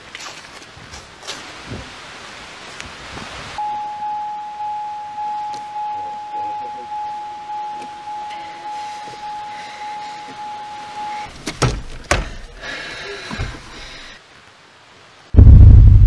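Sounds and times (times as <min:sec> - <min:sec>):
truck door warning chime dinging: 0:03.6 - 0:11.3.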